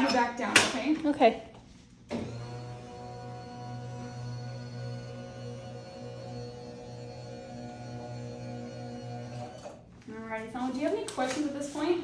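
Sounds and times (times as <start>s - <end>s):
electric bed motor humming: 2.1s - 10.0s.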